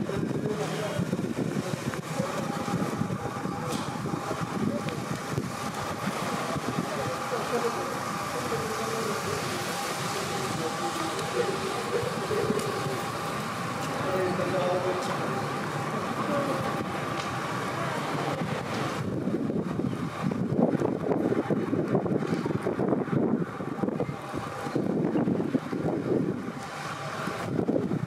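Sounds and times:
indistinct voices of passersby: 0:00.0 - 0:28.0
traffic noise: 0:00.0 - 0:28.0.

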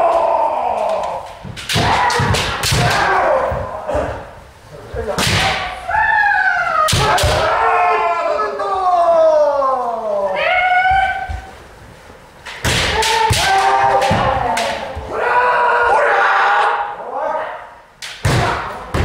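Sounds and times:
people shouting drawn-out shouts: 0:00.0 - 0:04.4, 0:05.5 - 0:09.1, 0:12.7 - 0:19.0
bamboo swords striking armour: 0:01.5 - 0:03.4, 0:05.2 - 0:05.7, 0:12.6 - 0:14.9, 0:18.1 - 0:19.0.

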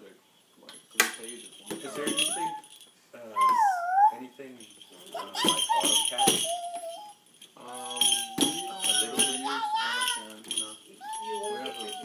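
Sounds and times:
toy shaker bells jingling: 0:00.8 - 0:03.6, 0:04.3 - 0:12.0
toddler calling in sing-song tones: 0:03.4 - 0:04.2, 0:05.1 - 0:07.2, 0:08.2 - 0:10.2.

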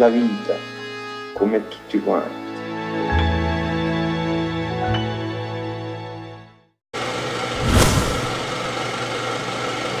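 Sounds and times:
music: 0:00.0 - 0:06.8
whoosh: 0:07.5 - 0:08.8.

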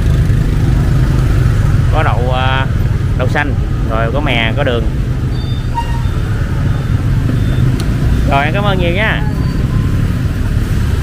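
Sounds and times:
motorbike engines rumbling: 0:00.0 - 0:11.0.

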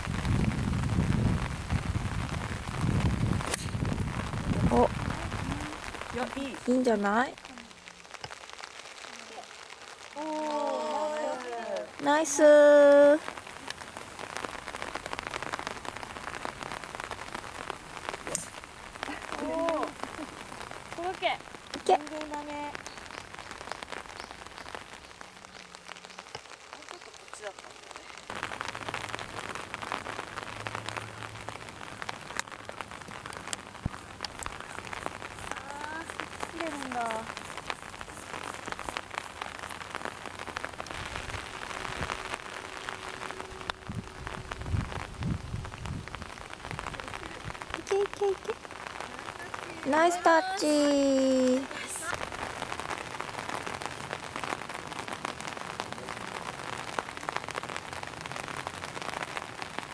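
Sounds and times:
steady rain falling: 0:00.0 - 0:59.9.

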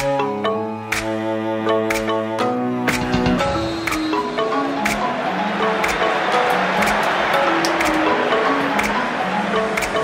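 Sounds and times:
melody over percussion: 0:02.9 - 0:10.0.

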